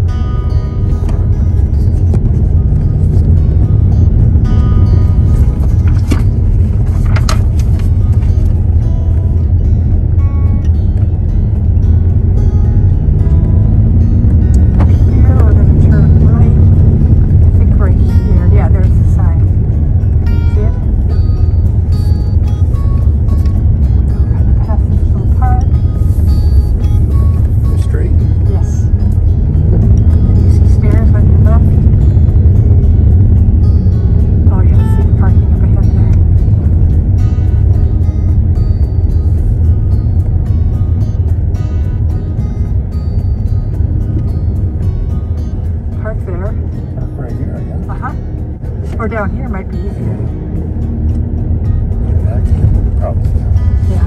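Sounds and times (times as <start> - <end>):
car rumbling over cobblestones: 0.0 - 54.0.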